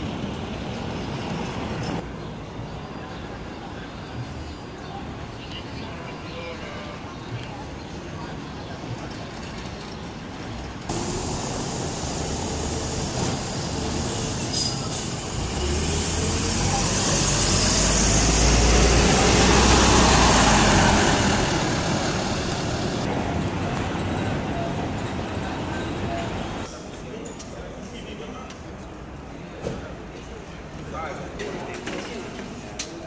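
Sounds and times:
street traffic: 0.0 - 33.0
bus diesel engine rumble: 10.9 - 26.7.

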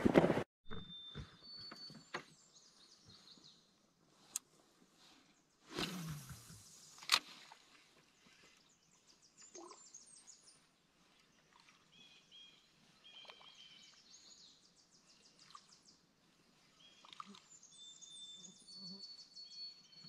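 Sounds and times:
songbirds trilling and whistling: 0.9 - 3.7, 8.2 - 20.0.

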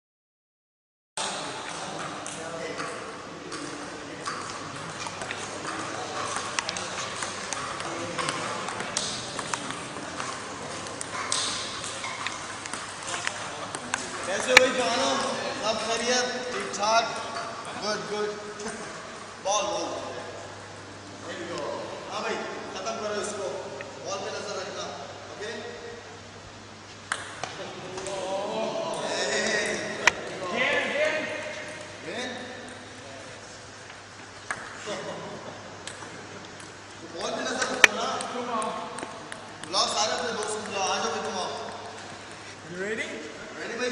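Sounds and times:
voices chattering: 1.4 - 26.1, 27.4 - 42.0
table tennis balls clicking: 1.9 - 14.8, 27.0 - 28.1, 30.0 - 30.4, 33.8 - 34.8, 35.8 - 42.4.

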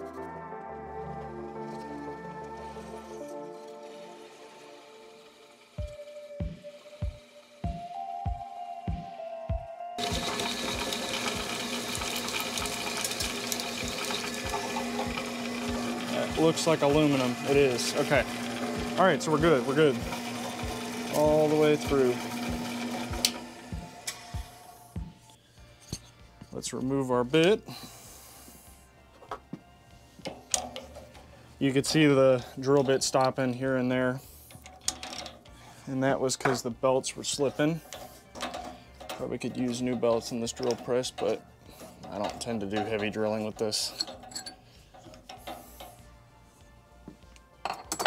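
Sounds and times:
faint background music: 0.0 - 48.0
drill press motor winding down: 1.4 - 8.2, 10.0 - 25.1
metal clinking on metal table: 43.8 - 44.6, 47.6 - 48.0.

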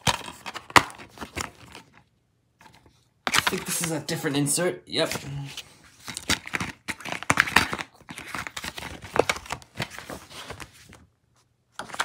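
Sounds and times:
paper rustling: 2.6 - 4.4, 5.0 - 12.0.

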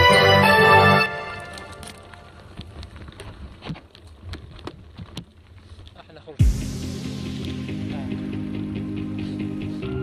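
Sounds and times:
wind: 0.0 - 10.0
bike rattling over bumps: 1.6 - 6.4
bike tyres rumbling on dirt: 2.0 - 6.4.

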